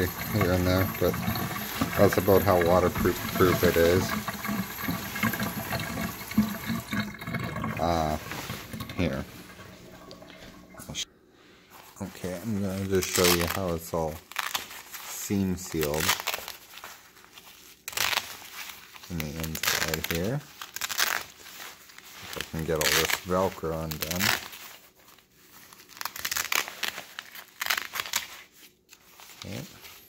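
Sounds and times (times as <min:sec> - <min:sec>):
faucet water splashing into sink: 0:00.0 - 0:11.0
stiff fabric crinkling: 0:11.7 - 0:30.0
velcro ripping apart: 0:12.9 - 0:30.0.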